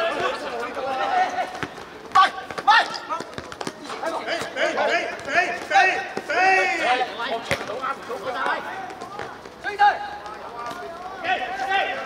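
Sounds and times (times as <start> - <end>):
players shouting: 0.0 - 12.0
football kicked and bouncing: 1.4 - 6.4, 7.4 - 7.8.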